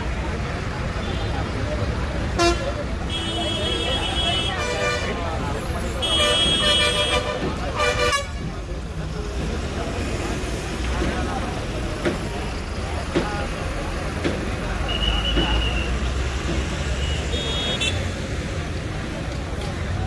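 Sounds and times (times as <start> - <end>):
traffic rumble: 0.0 - 20.0
voices: 0.0 - 20.0
vehicle horns tooting: 2.3 - 8.5, 14.8 - 16.2, 16.9 - 18.2.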